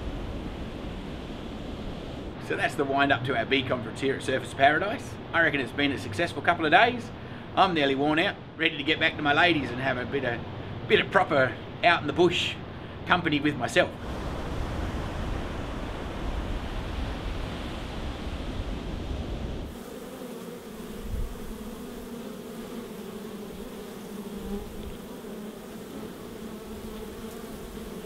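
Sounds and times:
surf washing on beach: 0.0 - 2.4, 14.0 - 19.8
bees buzzing: 14.0 - 28.0.

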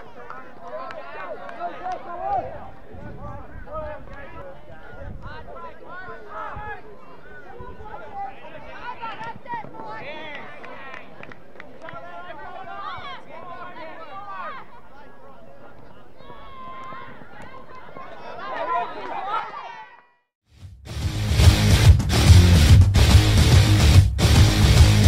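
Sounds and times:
people calling out and talking: 0.0 - 20.2
loud shouts: 11.9 - 15.3, 15.9 - 20.2.

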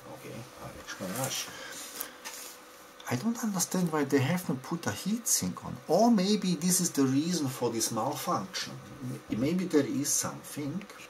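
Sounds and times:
faint rustling handling noise: 0.6 - 3.0.

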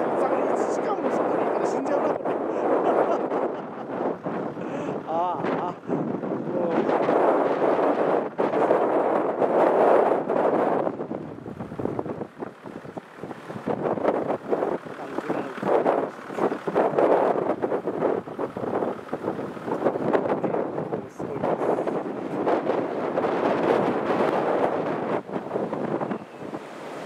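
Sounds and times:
gusty wind buffeting microphone: 0.0 - 27.0.

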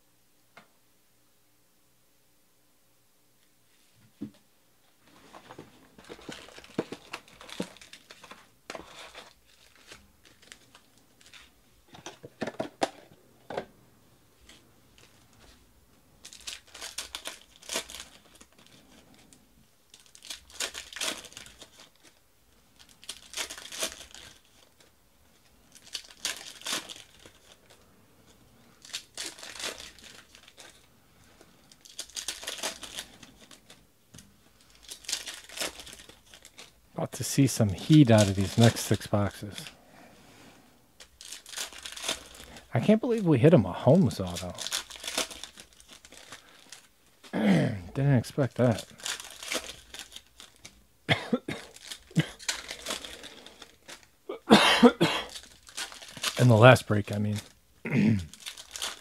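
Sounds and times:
plastic wrappers crinkling: 5.0 - 13.7, 14.4 - 15.6, 16.2 - 39.8, 40.9 - 47.3, 47.9 - 54.4, 55.2 - 59.0.

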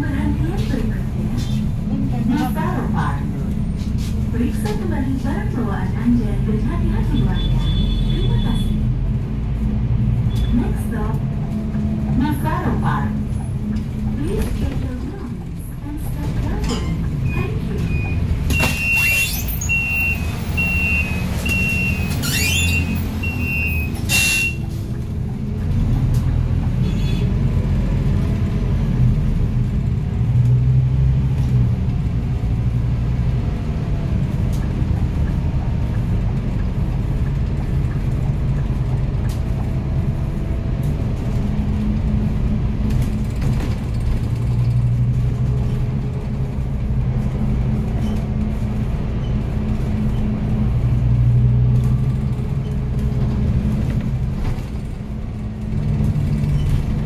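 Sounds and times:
bus engine and road noise: 0.0 - 57.0.

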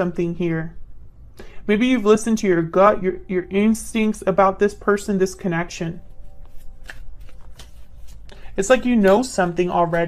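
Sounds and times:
cards being shuffled: 6.1 - 10.0.

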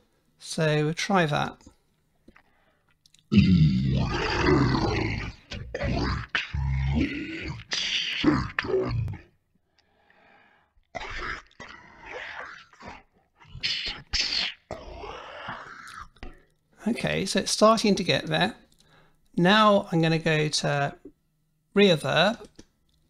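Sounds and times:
slowed deep growling male voice: 3.3 - 9.3.

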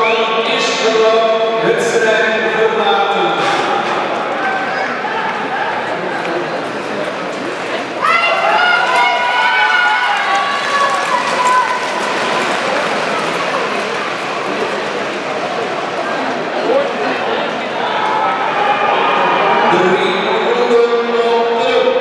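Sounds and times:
arena background noise: 0.0 - 22.0.

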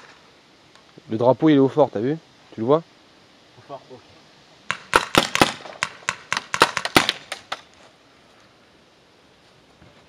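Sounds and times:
paintball marker firing: 4.7 - 7.7.

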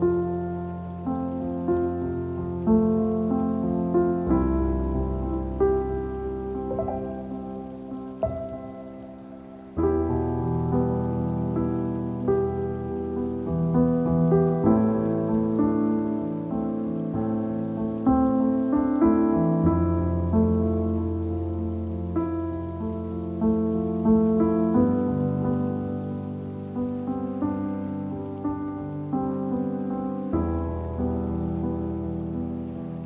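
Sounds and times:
rain: 0.0 - 33.0
soft solo piano: 0.0 - 33.0.

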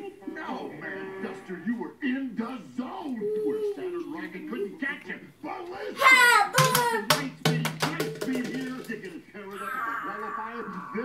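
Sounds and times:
voices: 0.0 - 11.0
high-pitched falling cry: 9.5 - 11.0.

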